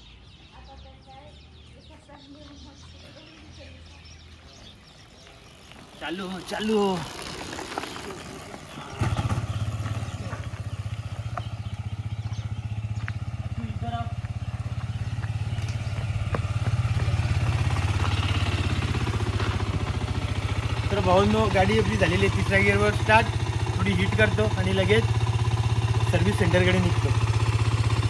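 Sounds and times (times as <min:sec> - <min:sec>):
motorcycle engine idling: 0:01.6 - 0:28.0.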